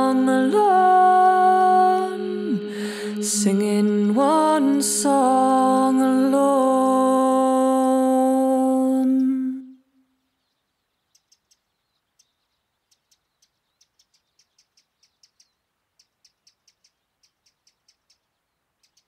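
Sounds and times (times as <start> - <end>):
faint high bird chirps: 9.0 - 19.0.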